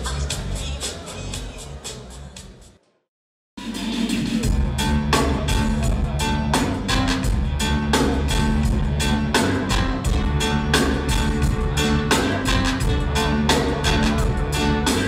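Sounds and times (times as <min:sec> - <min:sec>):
drums: 0:00.0 - 0:03.0, 0:03.6 - 0:15.0
bass line: 0:03.6 - 0:15.0
guitar: 0:04.4 - 0:15.0.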